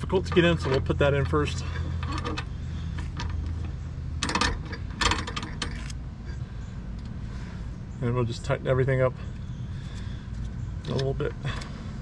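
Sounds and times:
steady low hum: 0.0 - 12.0
metal parts clinking: 0.2 - 6.0.

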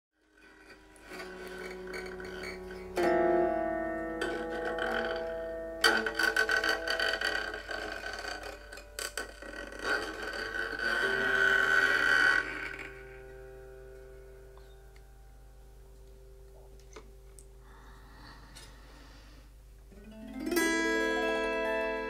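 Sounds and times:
autoharp strummed and plucked: 0.2 - 15.4, 19.9 - 22.0.

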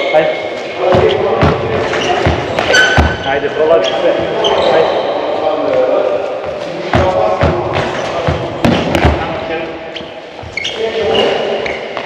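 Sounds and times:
ball bouncing on wooden floor: 0.9 - 3.3
shoe squeak: 1.8 - 5.4, 7.8 - 8.5, 9.8 - 12.0.

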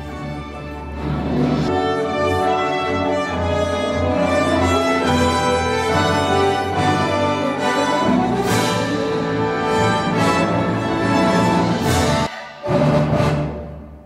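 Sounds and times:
orchestra playing lyrical strings: 0.0 - 14.0.

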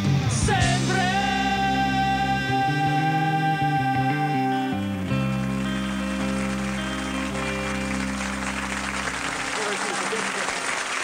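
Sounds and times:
rock band final chord ringing: 0.0 - 9.8
audience applause: 5.1 - 11.0.

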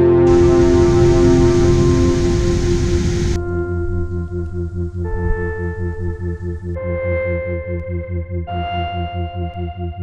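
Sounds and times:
background music sustained note: 0.0 - 10.0
waterfall rushing: 0.2 - 3.4.

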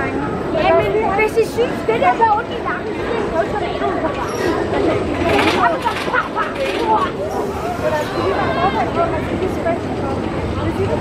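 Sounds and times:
people chattering: 0.0 - 11.0
roller coaster rattling on track: 0.0 - 11.0.

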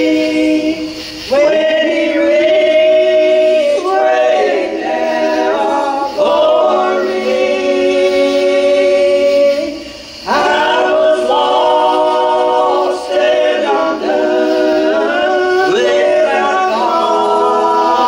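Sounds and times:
gospel group singing in harmony: 0.0 - 18.0.

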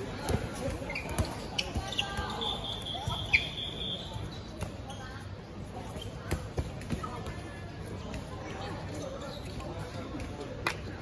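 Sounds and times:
balls bouncing on hard court: 0.0 - 3.5, 5.8 - 8.6.

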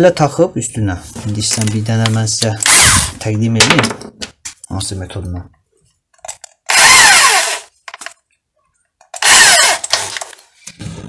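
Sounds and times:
electric drill whine: 6.7 - 7.7, 9.2 - 10.3.

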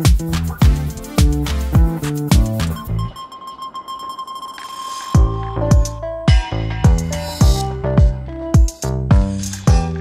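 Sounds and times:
electronic drum beat: 0.0 - 3.1, 5.2 - 10.0.

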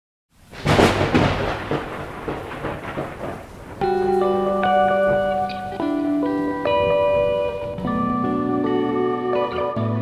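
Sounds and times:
falling rain: 0.3 - 8.9
thunderclap rolling: 0.4 - 8.4
music with sustained notes: 3.8 - 10.0.

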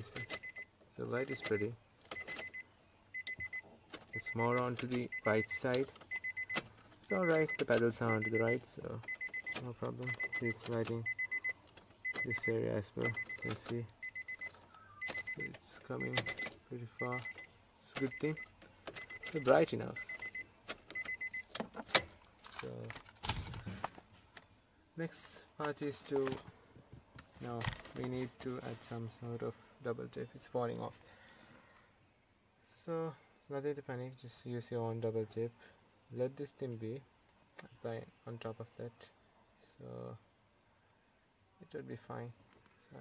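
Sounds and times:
car warning chime beeping: 0.0 - 21.5.

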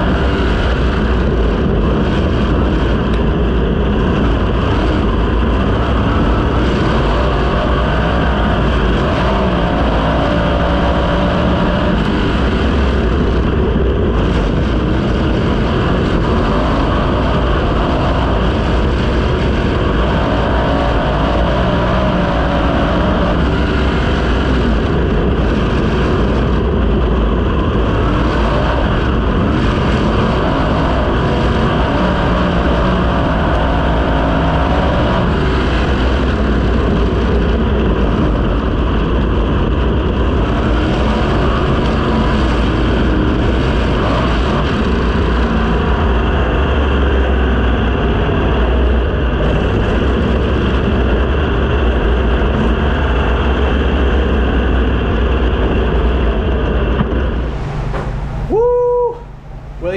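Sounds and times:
race car engine running hard: 0.0 - 59.9.

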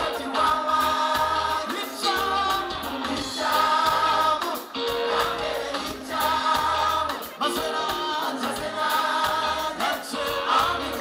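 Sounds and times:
band playing: 0.0 - 11.0
voices singing in chorus: 0.0 - 11.0.

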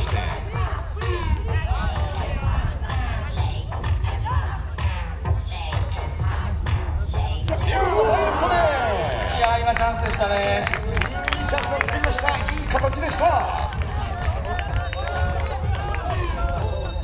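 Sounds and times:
background music: 0.0 - 17.0
crowd noise: 0.0 - 17.0
voices calling out: 6.8 - 17.0.

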